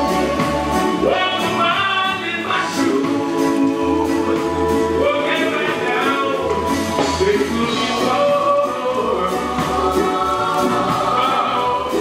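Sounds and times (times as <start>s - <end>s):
live band with bass line: 0.0s - 12.0s.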